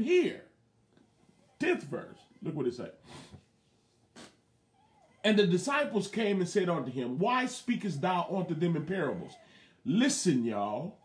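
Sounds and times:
faint breathy noises: 0:09.0 - 0:09.9.

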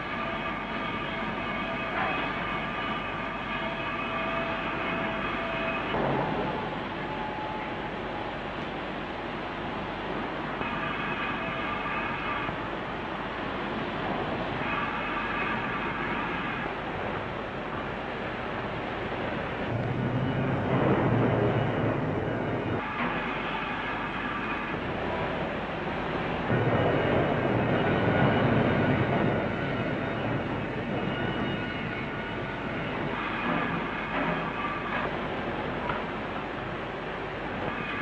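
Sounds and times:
steel mill machinery rumble: 0:00.0 - 0:38.0.

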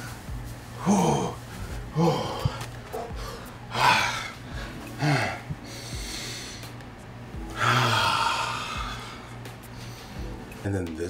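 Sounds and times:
rushing breath: 0:00.0 - 0:06.8, 0:07.5 - 0:10.4
man grunting: 0:00.8 - 0:02.6.

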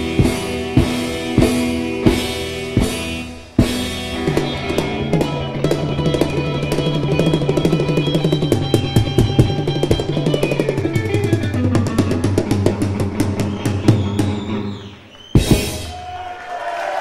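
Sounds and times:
rock band hitting chords: 0:00.0 - 0:14.7, 0:15.4 - 0:16.2
drum roll: 0:00.0 - 0:14.8, 0:15.4 - 0:16.5.

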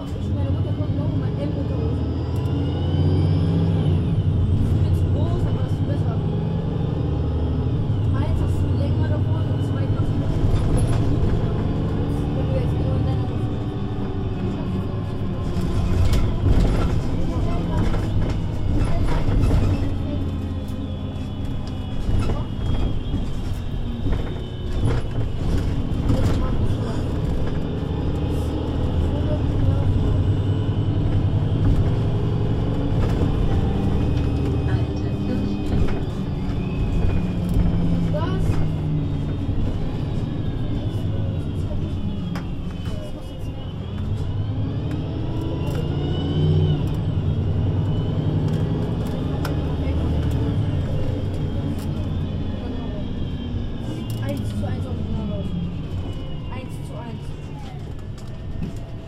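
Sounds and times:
bus diesel engine drone: 0:00.0 - 0:59.0
gearbox whines: 0:00.0 - 0:59.0.

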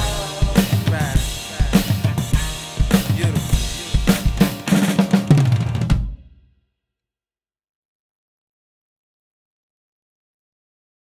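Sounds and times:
backing track: 0:00.0 - 0:06.3
drum kit hit ringing out: 0:00.0 - 0:06.4.

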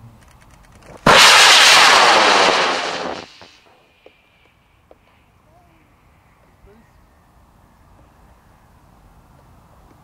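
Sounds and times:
rocket motor roaring hiss: 0:01.1 - 0:03.6.

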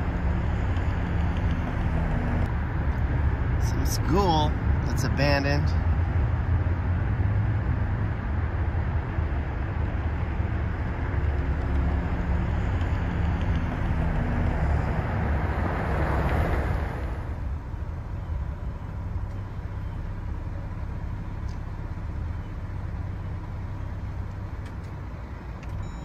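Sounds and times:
car engine rumble: 0:00.0 - 0:26.0
road noise: 0:00.0 - 0:26.0.

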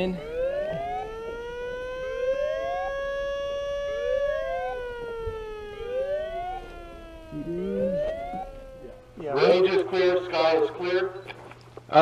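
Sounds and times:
rising siren whoop: 0:00.0 - 0:09.2
rising and falling siren tone: 0:00.0 - 0:09.6.

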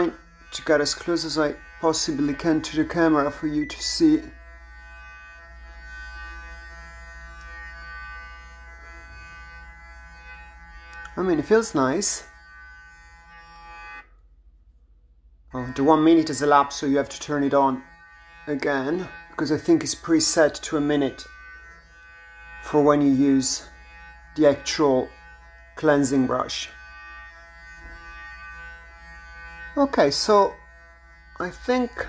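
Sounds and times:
facial brush motor humming: 0:00.0 - 0:14.2, 0:15.5 - 0:32.0.

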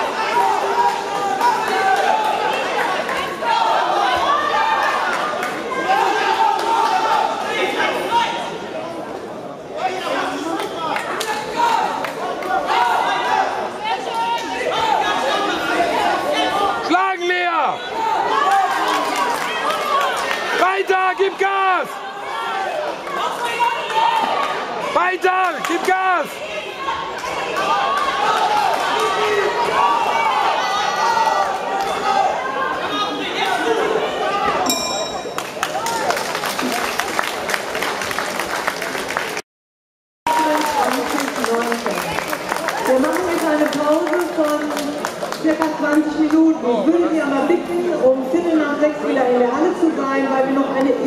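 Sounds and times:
spectators chattering: 0:00.0 - 0:39.4, 0:40.3 - 0:51.0
boxing bell ring: 0:34.7 - 0:35.6.

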